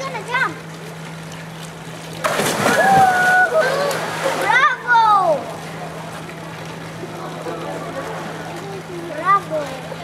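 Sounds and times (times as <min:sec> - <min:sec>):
loud splash into water: 0:02.2 - 0:04.7.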